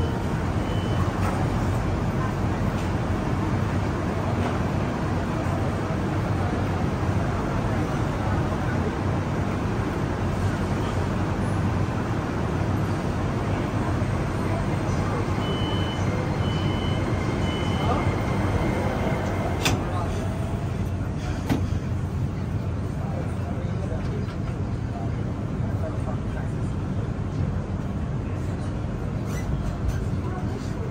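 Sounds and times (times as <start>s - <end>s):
people's voices: 0.0s - 29.1s
short high beeps: 15.4s - 18.5s
train doors knocking shut: 19.0s - 20.0s, 21.4s - 21.8s.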